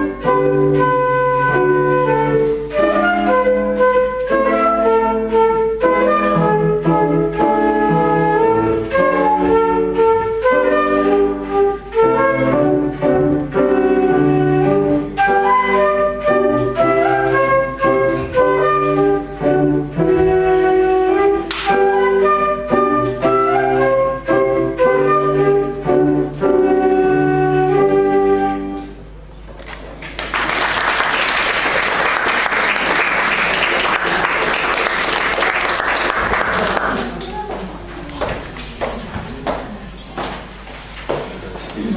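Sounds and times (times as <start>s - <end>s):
flute melody: 0.0s - 29.1s
grand piano accompaniment: 0.0s - 29.4s, 30.2s - 40.6s
audience applause: 30.0s - 37.4s.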